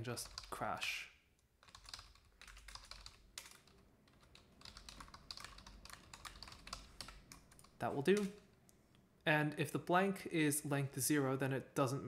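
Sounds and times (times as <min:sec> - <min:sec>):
typing on a computer keyboard: 0:00.2 - 0:00.6, 0:01.6 - 0:08.5.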